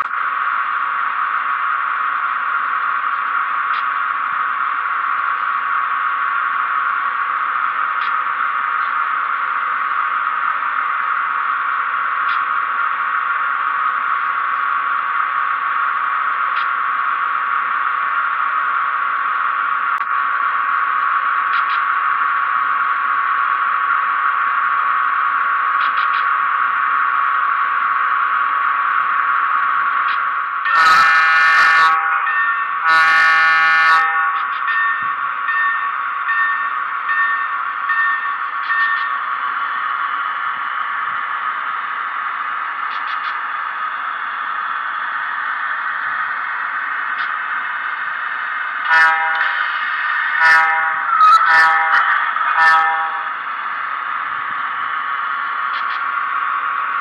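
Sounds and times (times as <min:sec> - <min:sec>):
harsh buzzing hum from speaker: 0:20.0 - 0:36.0, 0:40.5 - 0:57.0
short horn blasts: 0:30.7 - 0:32.2, 0:32.8 - 0:34.4, 0:48.8 - 0:49.7, 0:50.3 - 0:53.3.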